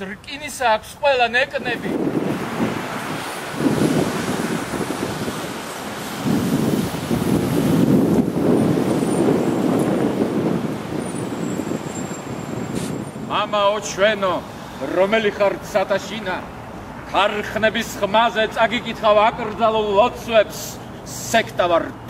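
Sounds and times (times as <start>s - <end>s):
low traffic rumble: 0.0s - 22.0s
wind on microphone: 1.6s - 14.8s.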